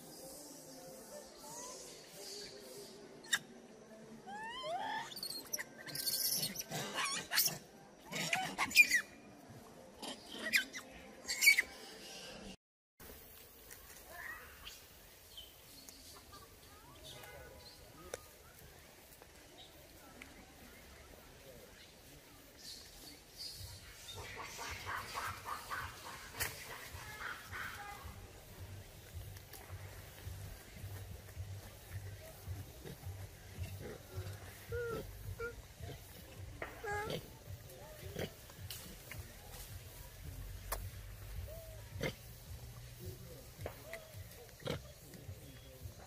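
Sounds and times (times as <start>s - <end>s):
monkeys squealing: 4.3s - 9.1s, 10.0s - 11.7s, 34.5s - 36.1s, 36.8s - 37.2s.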